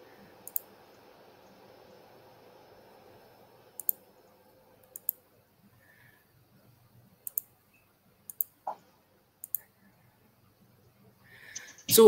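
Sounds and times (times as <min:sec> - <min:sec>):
computer mouse clicking: 0:00.4 - 0:00.7, 0:03.8 - 0:04.0, 0:04.8 - 0:05.2, 0:07.2 - 0:07.5, 0:08.3 - 0:08.8, 0:09.4 - 0:09.7, 0:11.5 - 0:12.0.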